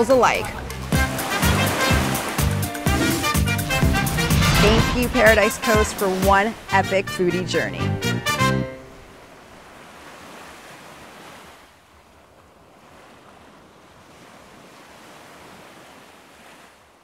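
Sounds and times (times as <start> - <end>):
waves washing onto beach: 0.5 - 7.2, 8.8 - 17.0.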